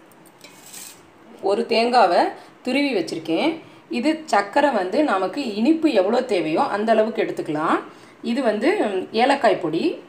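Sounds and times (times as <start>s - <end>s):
metal bowls being handled: 0.4s - 1.0s
faint metal scrape: 0.4s - 1.1s.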